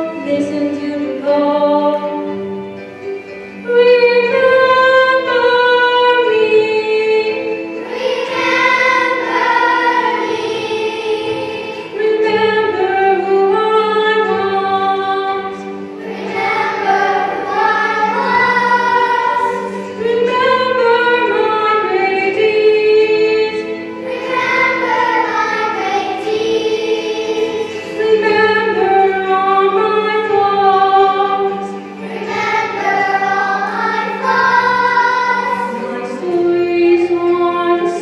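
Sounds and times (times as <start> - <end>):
children's choir singing: 0.0 - 38.0.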